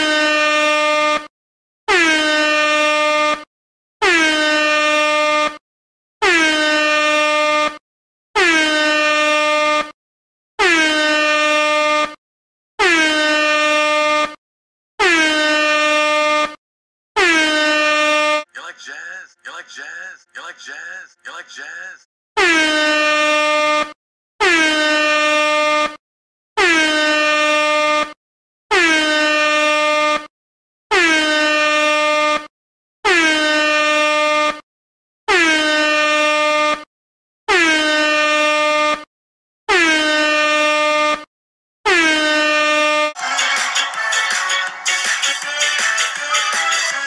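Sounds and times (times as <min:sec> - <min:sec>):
air horn blasts: 0:00.0 - 0:01.3.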